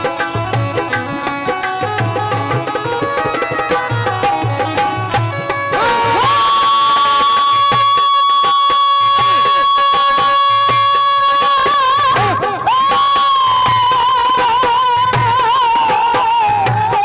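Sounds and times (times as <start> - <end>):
folk devotional singing: 5.7 - 7.4.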